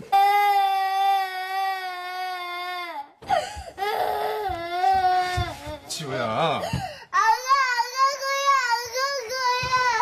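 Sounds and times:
girl crying wails: 0.1 - 5.9, 6.8 - 10.0
girl gasping: 3.2 - 4.6, 6.6 - 7.2.

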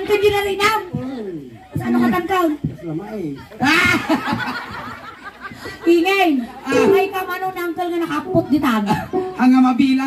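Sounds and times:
laughter into microphones: 3.6 - 5.9.

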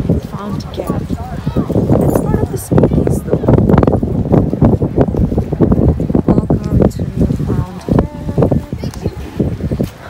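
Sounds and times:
people talking: 0.0 - 3.7, 6.3 - 9.5
footsteps on stone paving: 3.8 - 10.0.

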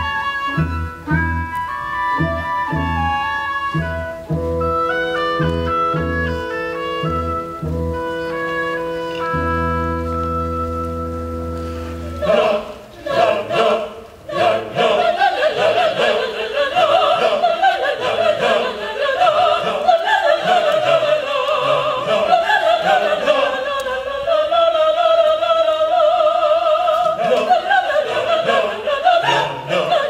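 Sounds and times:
orchestra playing: 0.0 - 12.8
opera chorus singing: 12.0 - 30.0.

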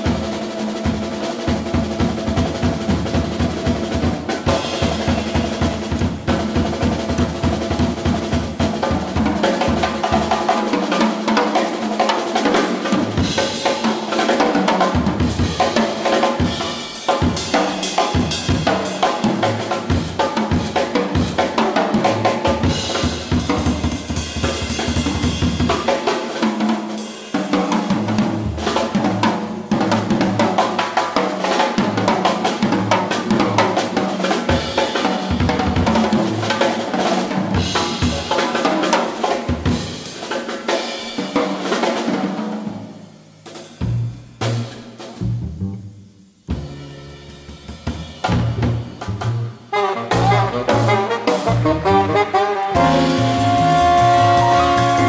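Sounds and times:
jazz drum kit solo: 0.0 - 55.0.

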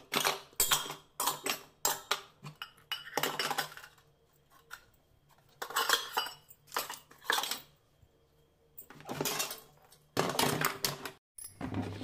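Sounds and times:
steel utensils clinking: 0.0 - 7.8, 8.8 - 10.7.

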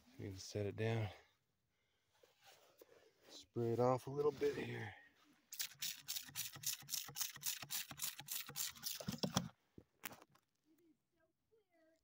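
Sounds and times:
spray bottle squirting water: 5.5 - 9.5.

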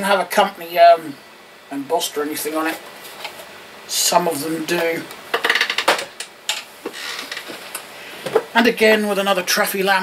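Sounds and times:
hard plastic knocks and clicks: 5.3 - 6.7.

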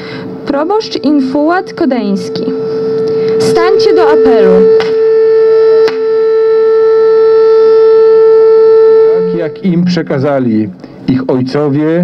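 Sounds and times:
steady siren-like tone: 0.0 - 11.5.

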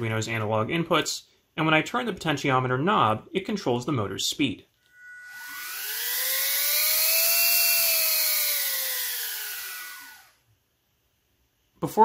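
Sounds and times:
faint high whine: 4.8 - 10.5
small motor whine: 4.9 - 10.4.

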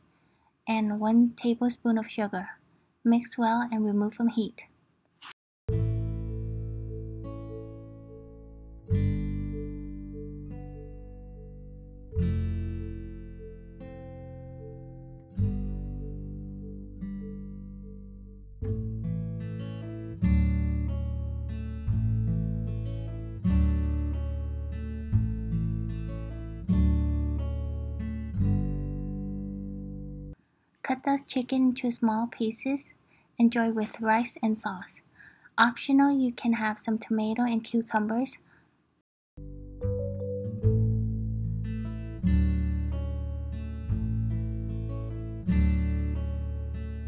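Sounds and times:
plucked acoustic guitar music: 5.7 - 30.4, 39.4 - 47.0.

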